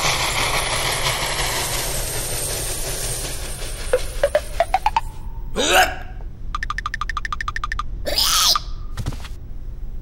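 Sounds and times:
squeal-like cry: 8.1 - 8.8.

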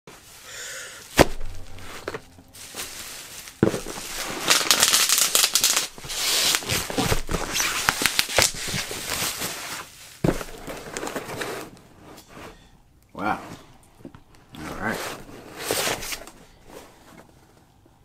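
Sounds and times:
bubble wrap crinkling: 0.1 - 11.4
bubble wrap snapping: 1.1 - 10.7.

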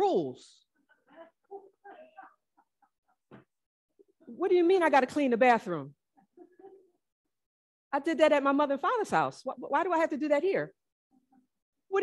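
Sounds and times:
woman speaking: 4.3 - 6.7, 8.0 - 10.8.

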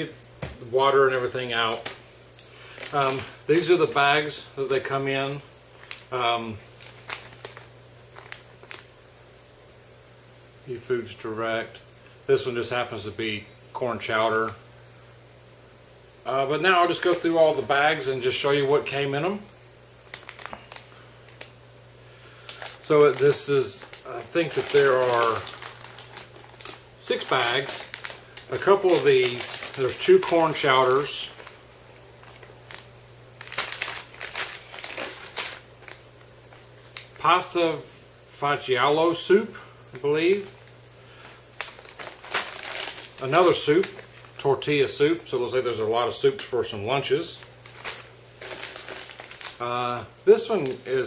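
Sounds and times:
steady low hum: 0.0 - 51.0
plastic pouch crinkling: 1.3 - 4.2, 5.7 - 9.0, 16.6 - 21.6, 22.3 - 37.5, 40.5 - 44.5, 47.3 - 49.6.

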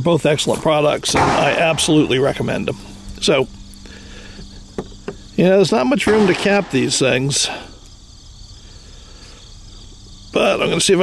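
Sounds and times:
insects trilling: 0.0 - 11.0
faint low rumble: 0.4 - 8.2.

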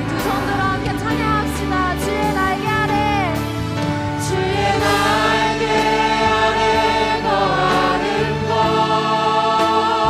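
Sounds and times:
live band accompaniment: 0.0 - 7.0
group singing praise song: 4.2 - 10.0.

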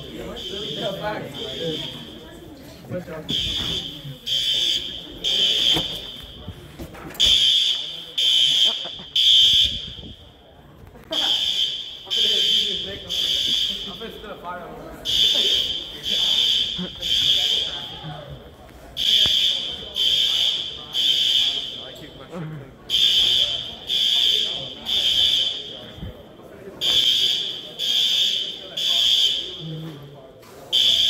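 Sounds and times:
fire alarm horn blasts: 0.0 - 2.4, 3.3 - 6.6, 7.2 - 10.4, 11.2 - 14.3, 15.0 - 18.4, 19.0 - 22.2, 22.9 - 26.2, 26.8 - 29.7, 30.7 - 31.0.

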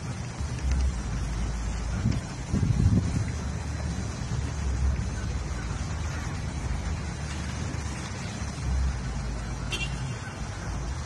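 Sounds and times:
wind on microphone: 0.0 - 9.4
road traffic: 0.0 - 11.0.

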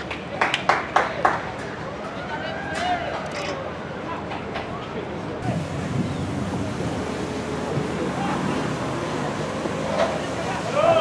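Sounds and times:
wind on microphone: 5.4 - 9.0
distant shouts: 10.5 - 11.0.

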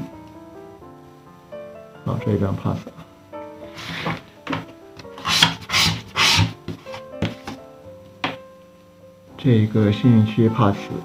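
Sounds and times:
scratch card being scraped: 5.2 - 6.6.

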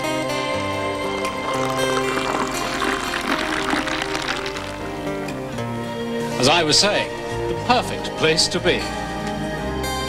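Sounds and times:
background music: 0.0 - 10.0
beer pouring into glass: 0.7 - 5.4.

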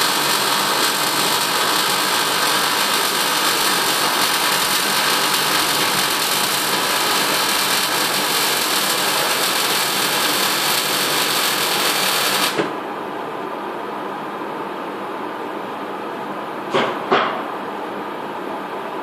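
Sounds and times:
welding arc hiss and crackle: 0.0 - 12.7.

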